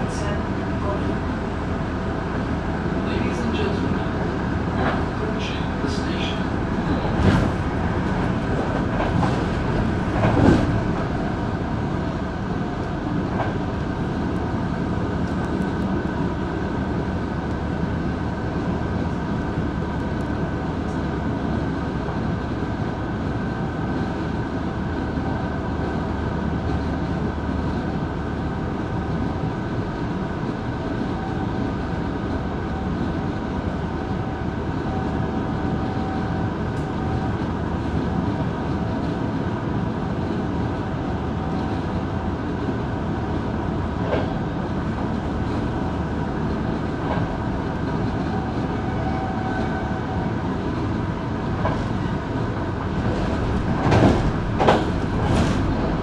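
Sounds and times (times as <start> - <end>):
constant train whine: 0.0 - 56.0
train rolling on rails: 0.0 - 56.0.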